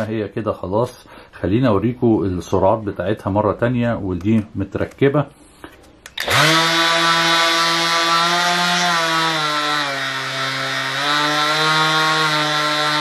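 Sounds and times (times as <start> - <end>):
orbital sander motor hum: 6.2 - 13.0.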